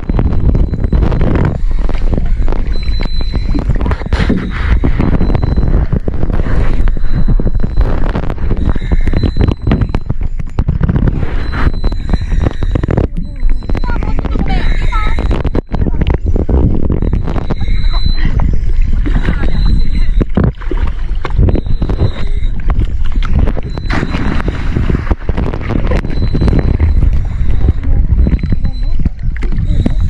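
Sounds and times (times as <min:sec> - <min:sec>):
sea water sloshing against camera: 0:00.0 - 0:30.0.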